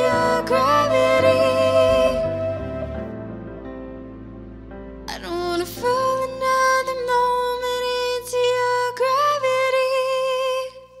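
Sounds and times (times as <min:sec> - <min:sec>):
woman singing with vibrato: 0:00.0 - 0:03.1, 0:05.1 - 0:11.0
soft musical accompaniment: 0:00.0 - 0:11.0.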